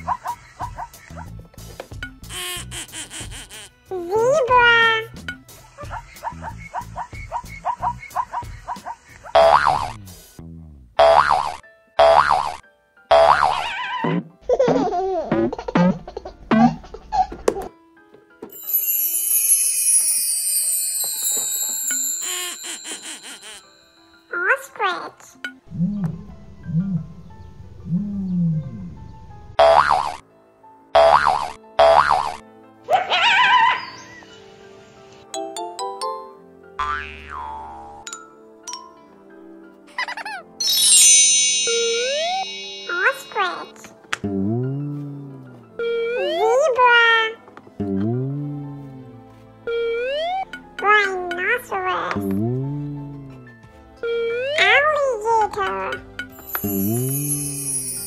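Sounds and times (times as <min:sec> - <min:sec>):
children's background music: 0:00.0 - 0:10.2, 0:11.0 - 0:58.0
springy boing effects: 0:09.4 - 0:10.0, 0:11.0 - 0:13.6, 0:29.6 - 0:30.2, 0:31.0 - 0:32.4, 0:36.8 - 0:38.0.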